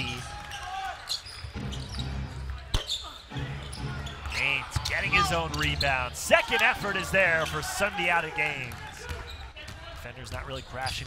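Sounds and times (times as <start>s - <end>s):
shoe squeaks: 1.0s - 6.2s.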